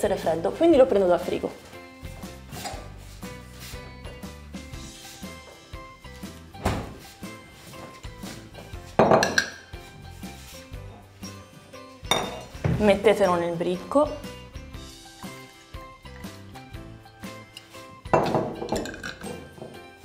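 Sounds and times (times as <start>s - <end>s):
soft background music: 0.0s - 20.0s
glass bottle clinking on counter: 9.0s - 9.6s, 12.1s - 12.5s, 18.1s - 19.8s.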